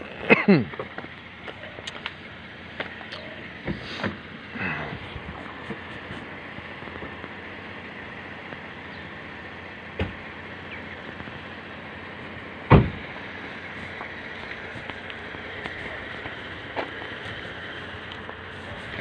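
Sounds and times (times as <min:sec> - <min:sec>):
car engine idling: 0:00.0 - 0:19.0
sharp thump: 0:12.7 - 0:13.0.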